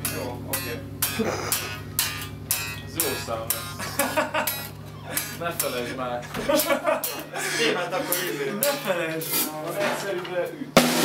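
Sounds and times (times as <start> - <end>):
electric guitar: 0.0 - 7.4
steady drum beat: 0.0 - 9.6, 10.7 - 11.0.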